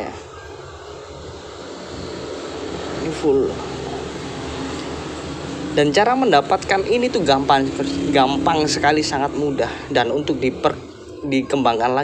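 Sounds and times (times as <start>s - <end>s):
low mechanical hum: 0.2s - 11.5s.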